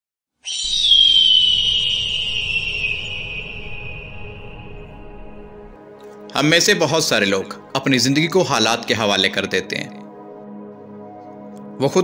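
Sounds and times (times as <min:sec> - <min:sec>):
whistle-like tone gliding down: 0:00.4 - 0:05.8.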